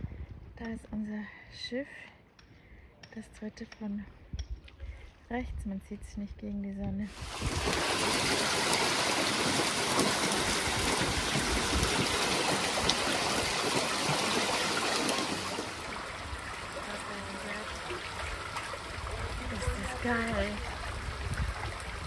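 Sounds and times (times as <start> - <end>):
seawater rushing and splashing: 7.1 - 22.0.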